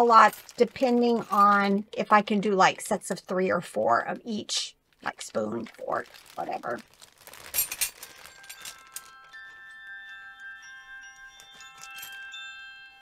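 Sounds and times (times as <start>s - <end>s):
metal flatware clinking in bag: 0.0s - 1.8s, 7.2s - 9.4s, 11.2s - 12.4s.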